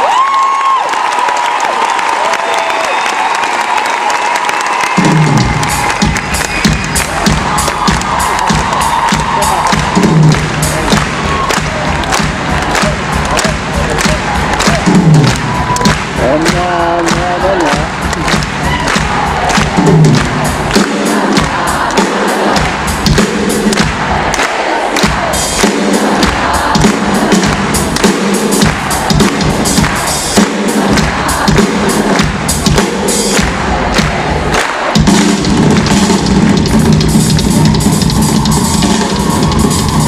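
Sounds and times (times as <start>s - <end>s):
drum solo: 4.9s - 24.3s, 25.0s - 40.0s.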